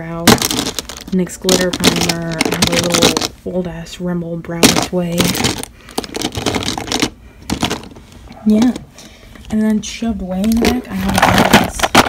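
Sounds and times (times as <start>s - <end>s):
makeup pencils clattering in drawer: 0.2s - 3.3s, 4.5s - 7.9s, 10.4s - 12.0s.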